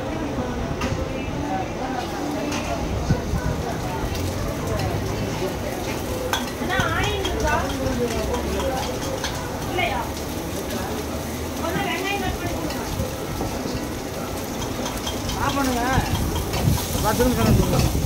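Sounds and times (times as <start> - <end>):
gas burner rumble: 1.8 - 18.0
noodles sizzling in a wok: 2.0 - 18.0.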